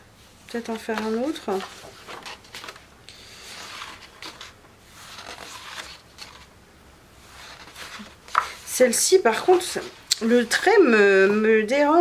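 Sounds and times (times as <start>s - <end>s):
paper pages turning: 0.7s - 6.5s, 7.2s - 9.9s.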